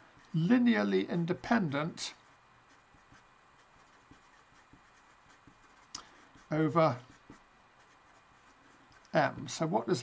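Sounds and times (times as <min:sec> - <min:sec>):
marker writing on paper: 0:01.6 - 0:09.2.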